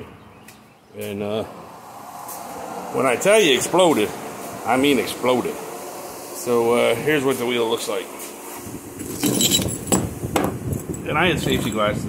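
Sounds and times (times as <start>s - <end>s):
broken grinding wheel pieces clinking: 9.0s - 10.1s.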